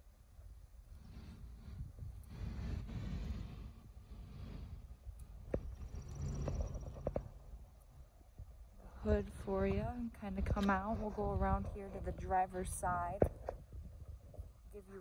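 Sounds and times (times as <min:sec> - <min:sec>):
wind rumble: 0:00.0 - 0:15.0
microphone handling noise: 0:08.4 - 0:14.6.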